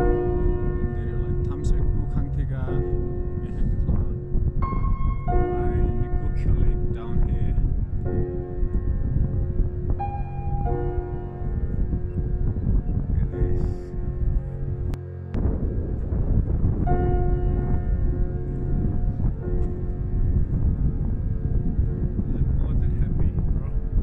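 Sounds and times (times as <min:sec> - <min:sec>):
soft music with sustained notes: 0:00.0 - 0:24.0
strong wind rumbling on microphone: 0:00.0 - 0:24.0.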